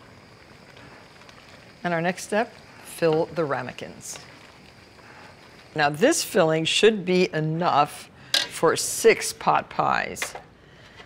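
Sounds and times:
woman speaking: 0:01.8 - 0:04.3, 0:05.8 - 0:10.4.

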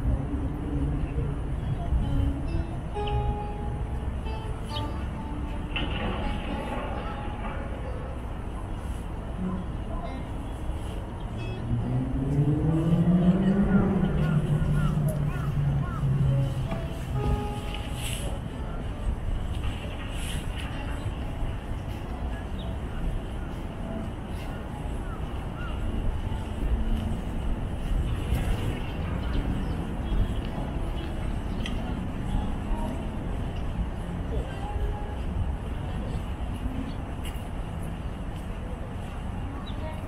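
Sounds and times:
low city rumble: 0:00.0 - 0:40.0
vehicle engine accelerating: 0:11.6 - 0:17.9.

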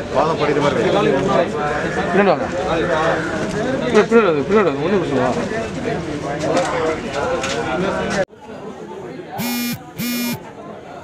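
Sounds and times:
short buzzer tones: 0:09.4 - 0:10.4.

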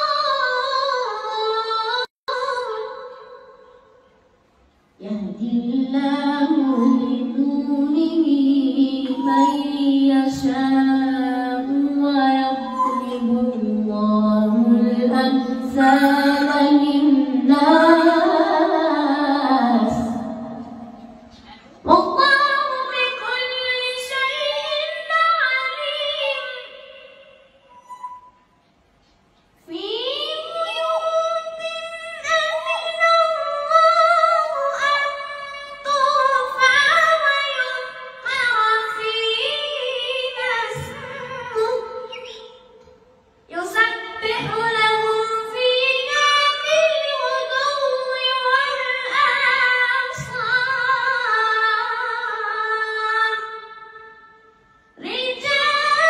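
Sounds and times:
boy chanting melodically: 0:05.0 - 0:27.9, 0:29.6 - 0:42.9, 0:43.5 - 0:54.2.

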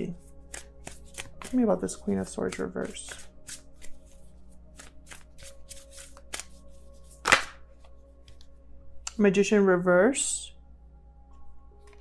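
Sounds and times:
cards being shuffled: 0:00.4 - 0:08.0
card snap: 0:00.5 - 0:01.6, 0:07.2 - 0:07.6.

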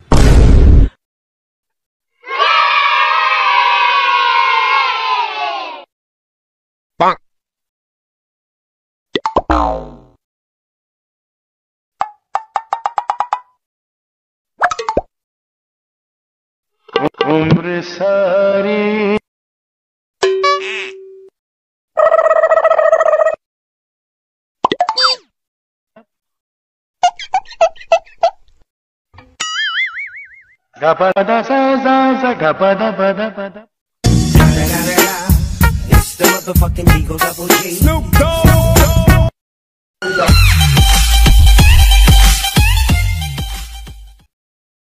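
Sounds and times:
cartoon boing sound effect: 0:09.4 - 0:10.2, 0:20.3 - 0:21.1, 0:29.4 - 0:30.6
music: 0:34.0 - 0:39.3, 0:40.0 - 0:44.3.

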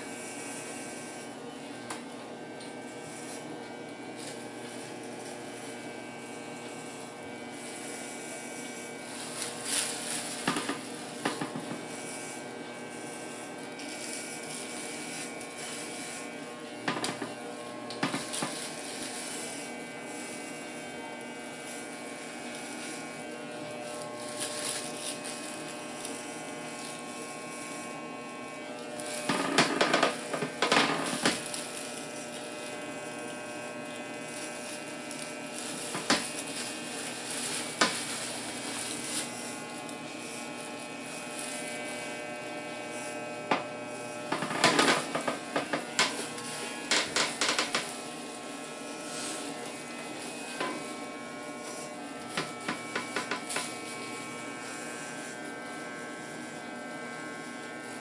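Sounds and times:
electric hair clipper buzzing: 0:00.0 - 0:58.0.

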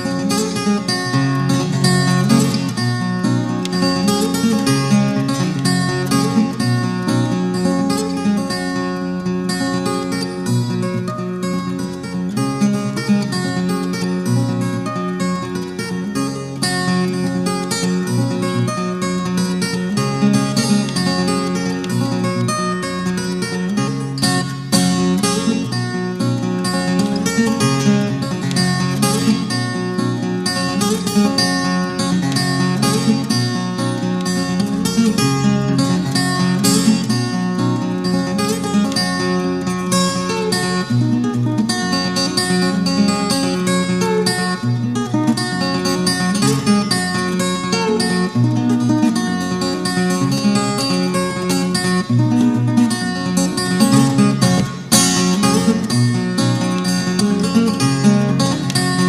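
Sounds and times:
acoustic guitar fingerpicking ragtime: 0:00.0 - 0:59.0.

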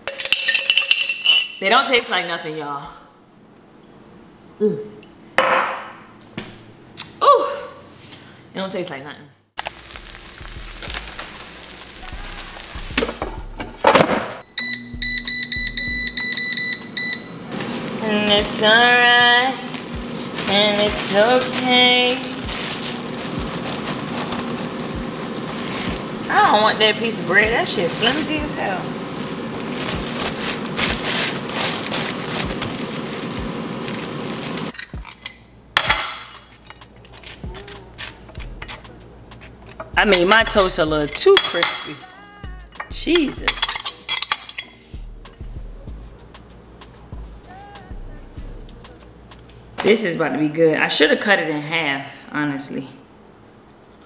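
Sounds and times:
plastic bag crinkling: 0:09.6 - 0:13.2, 0:17.5 - 0:34.8
low steady hum: 0:09.6 - 0:54.0
short high beeps: 0:14.4 - 0:17.4.

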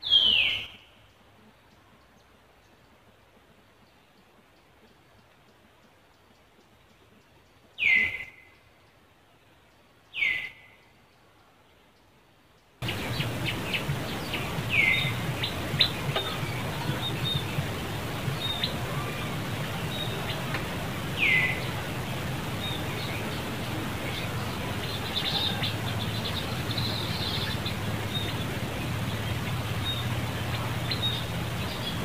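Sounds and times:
outdoor chirps and clicks: 0:12.6 - 0:18.7.

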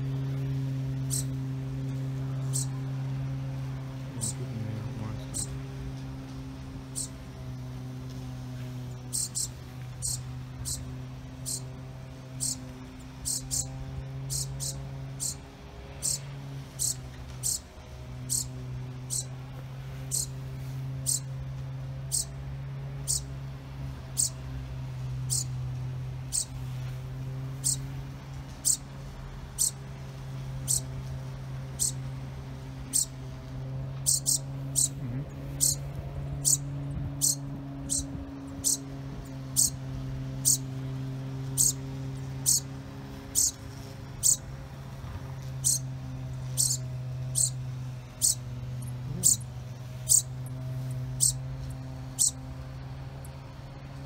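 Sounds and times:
low hum: 0:00.0 - 0:54.0
fledgling sparrow chirping: 0:00.9 - 0:03.2, 0:03.8 - 0:05.8, 0:06.7 - 0:07.3, 0:08.6 - 0:21.4, 0:22.0 - 0:23.4, 0:24.0 - 0:24.5, 0:25.1 - 0:26.9, 0:27.5 - 0:28.0, 0:28.6 - 0:30.0, 0:30.6 - 0:31.0, 0:31.7 - 0:32.0, 0:32.8 - 0:33.2, 0:34.0 - 0:40.8, 0:41.4 - 0:44.6, 0:45.4 - 0:52.5.

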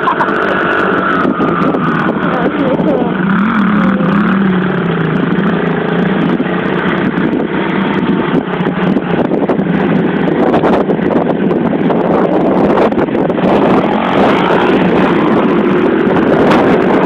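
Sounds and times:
pit bike engine revving: 0:00.0 - 0:17.0.

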